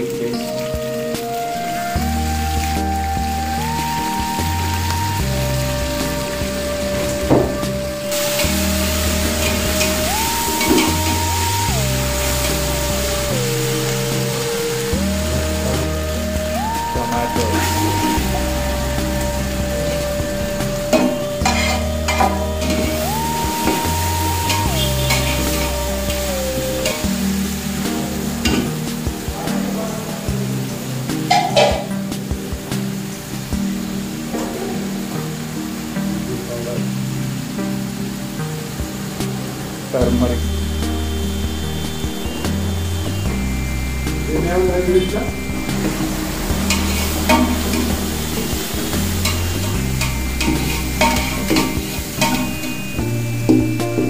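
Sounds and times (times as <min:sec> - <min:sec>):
vegetables sizzling in hot oil: 0:08.1 - 0:28.8, 0:40.2 - 0:54.0.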